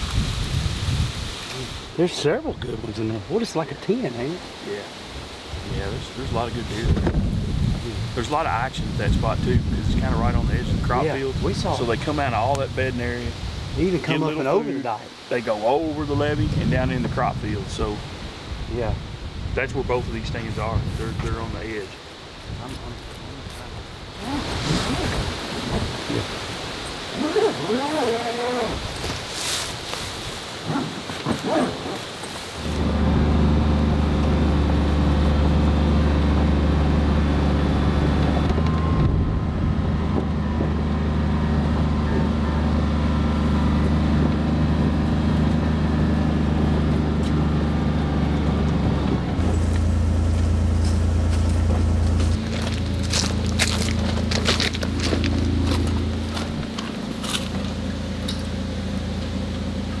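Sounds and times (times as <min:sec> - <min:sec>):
utility vehicle engine droning: 0:30.7 - 1:00.0.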